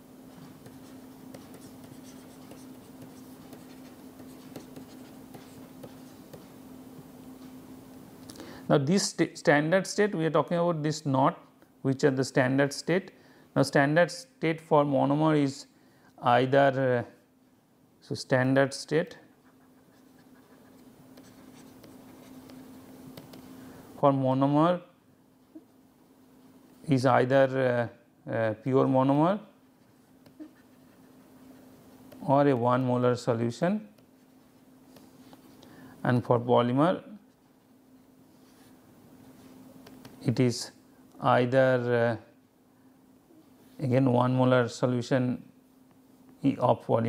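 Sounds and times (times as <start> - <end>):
low electrical hum: 0.0 - 47.0
stylus scratching on tablet: 0.3 - 6.6, 19.3 - 23.5, 29.8 - 32.3.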